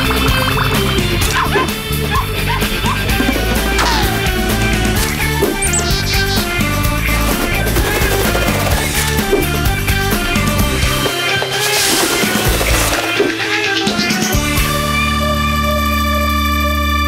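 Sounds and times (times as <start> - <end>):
tv theme music: 0.0 - 17.0.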